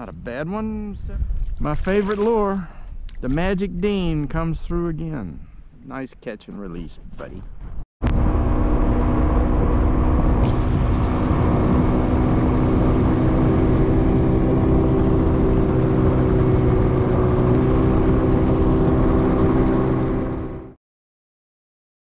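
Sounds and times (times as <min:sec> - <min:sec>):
wind: 0:00.0 - 0:20.8
water rushing: 0:01.7 - 0:02.6
outboard motor running: 0:08.0 - 0:20.8.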